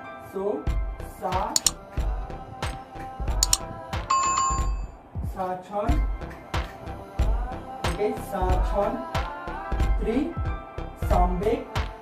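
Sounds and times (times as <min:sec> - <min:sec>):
background music with steady beat: 0:00.0 - 0:12.0
bell-like ringing tone: 0:04.1 - 0:05.0.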